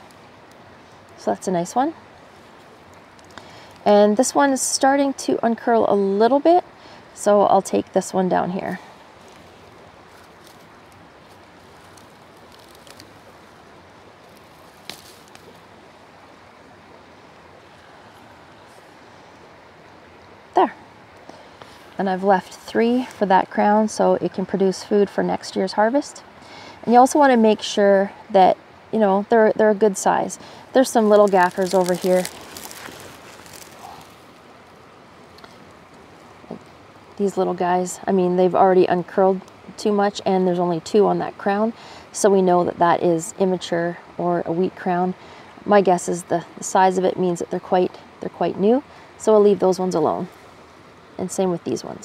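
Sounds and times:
rustling of dry stalks: 0.0s - 28.3s, 28.9s - 42.6s, 47.5s - 52.0s
faint outdoor rush: 0.0s - 52.0s
soft hiss: 0.0s - 52.0s
faint rustling ticks: 2.6s - 4.0s, 9.2s - 13.6s, 30.4s - 36.8s.

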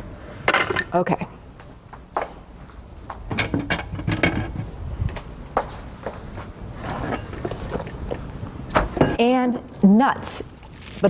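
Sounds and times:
kitchenware clinking and knocking: 3.3s - 4.7s, 8.8s - 9.2s.

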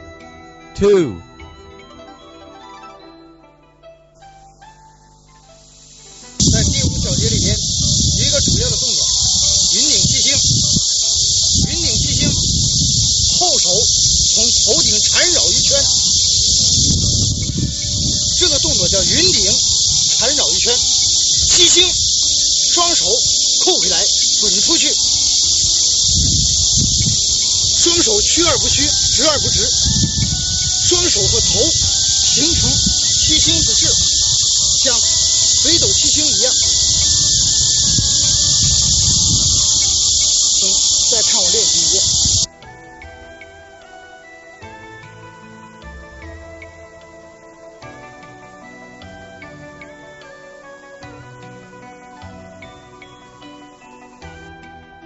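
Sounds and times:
loud high-pitched hiss: 5.0s - 42.5s
person speaking: 6.4s - 16.8s, 17.5s - 42.5s.

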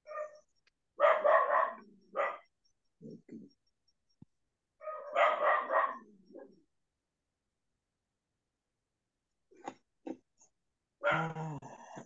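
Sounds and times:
dog barking: 0.0s - 2.5s, 4.8s - 6.6s, 11.0s - 11.4s.

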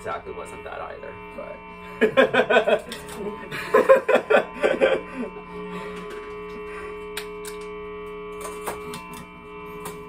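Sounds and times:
sustained guitar tones: 0.0s - 10.0s.

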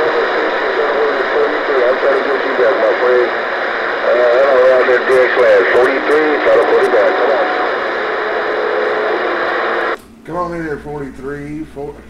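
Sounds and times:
voice over radio speaker: 0.0s - 10.0s
radio static hiss: 0.0s - 12.0s.

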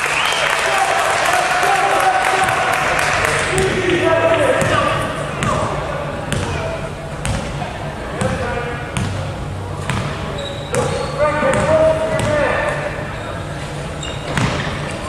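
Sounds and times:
indistinct voices shouting: 0.0s - 6.2s.

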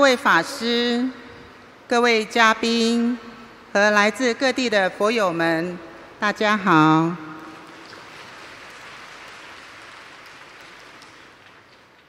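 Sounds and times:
audience applauding: 7.6s - 12.0s.

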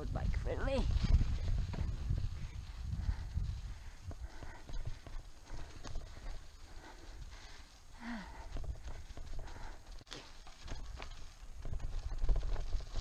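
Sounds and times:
bike knocking and rattling over bumps: 0.0s - 13.0s
low rumble of tyres: 0.8s - 13.0s.

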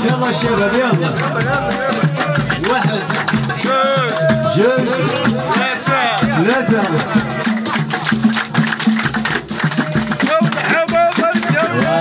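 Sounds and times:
drums and rattling percussion: 0.0s - 12.0s.

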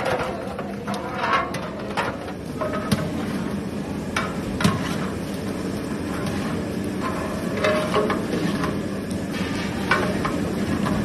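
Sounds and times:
fire roaring under pot: 0.0s - 11.0s.

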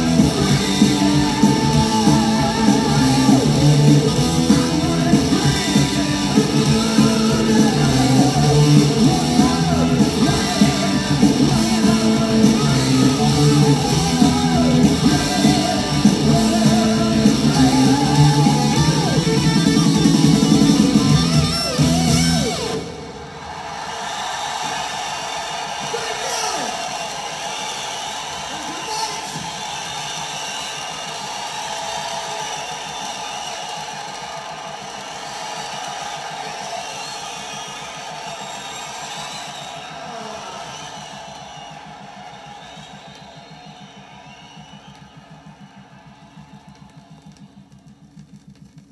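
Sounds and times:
live rock music from vinyl: 0.0s - 22.9s
crowd cheering and shouting: 0.0s - 48.6s.

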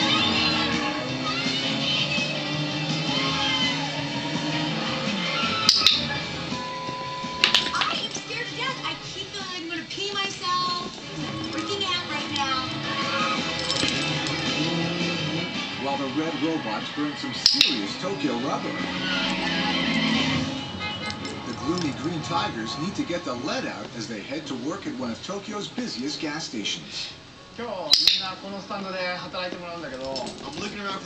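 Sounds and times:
television background music: 0.0s - 31.0s
television voices: 0.0s - 31.0s
sharp clicks: 17.5s - 17.8s.

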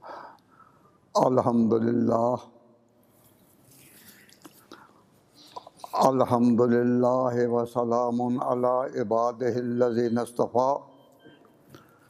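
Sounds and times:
man breathing: 0.0s - 1.1s
low room hiss: 0.0s - 12.0s.

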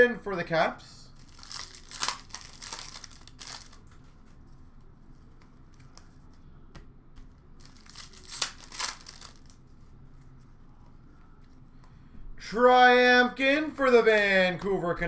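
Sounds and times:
plastic wrapper crinkling: 1.2s - 4.4s, 7.6s - 9.7s.

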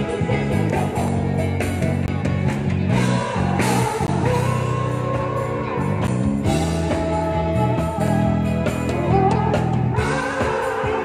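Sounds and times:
person singing lead vocal: 0.0s - 2.1s, 2.9s - 11.0s
drums: 0.0s - 11.0s
electric guitar: 0.0s - 11.0s.

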